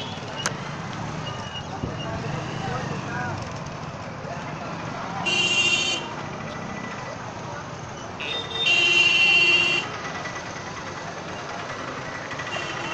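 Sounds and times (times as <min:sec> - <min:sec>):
crowd voices: 0:00.0 - 0:12.5
street traffic: 0:00.0 - 0:12.9
vehicle horn toot and blast: 0:05.3 - 0:06.1, 0:08.2 - 0:09.9.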